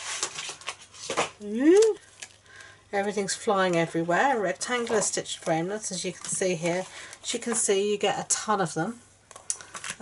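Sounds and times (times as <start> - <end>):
plastic packet crinkling: 0.0 - 5.1, 9.3 - 10.0.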